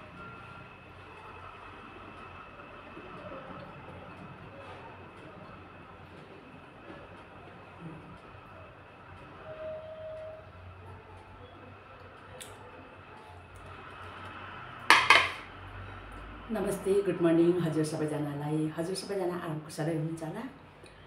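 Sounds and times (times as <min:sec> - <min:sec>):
quiet kitchen background: 0:11.4 - 0:21.0
plate clattering on hard surface: 0:14.9 - 0:15.5.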